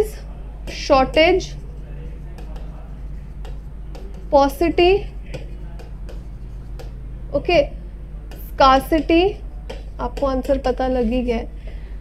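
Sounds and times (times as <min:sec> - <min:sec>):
steady low hum: 0:00.0 - 0:12.0
stylus tapping on screen: 0:02.3 - 0:07.0, 0:08.2 - 0:11.1.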